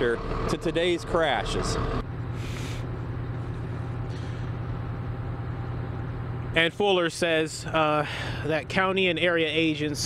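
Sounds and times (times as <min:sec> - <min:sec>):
vehicle engines idling: 0:00.0 - 0:10.0
short hisses: 0:02.4 - 0:02.9.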